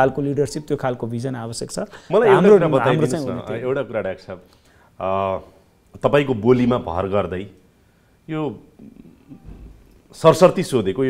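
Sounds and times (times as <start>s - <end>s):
man saying a short word: 2.1s - 3.6s.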